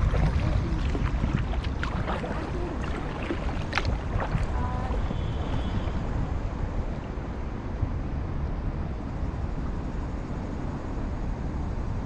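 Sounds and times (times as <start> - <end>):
light water splashes: 0.0 - 7.6
water lapping at hull: 0.0 - 7.9
wind rumble on microphone: 0.0 - 12.0.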